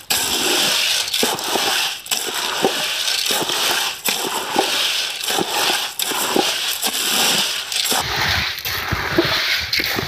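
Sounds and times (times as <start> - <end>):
loud hiss with crackling: 0.0 - 10.0.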